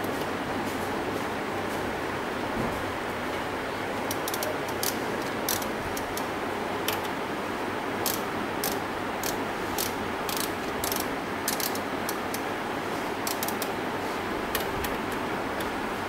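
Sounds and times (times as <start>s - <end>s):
sharp mechanical clicks: 4.0s - 7.2s, 8.0s - 12.5s, 13.2s - 13.8s.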